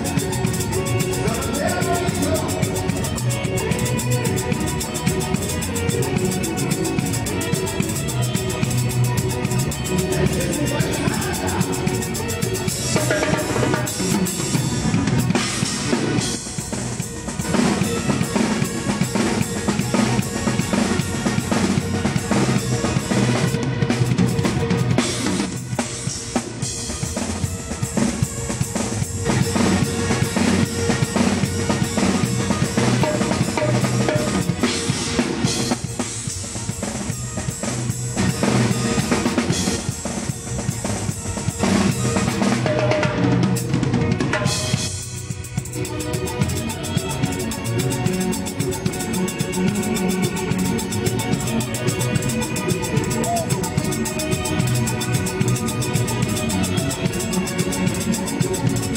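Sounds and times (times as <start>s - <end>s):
band music: 0.0s - 58.9s
drum kit with timbales: 0.0s - 58.9s.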